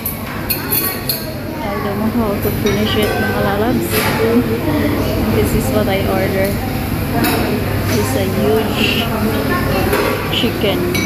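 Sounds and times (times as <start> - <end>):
cutlery and dishes clinking: 0.0 - 1.4
diners talking: 0.4 - 11.0.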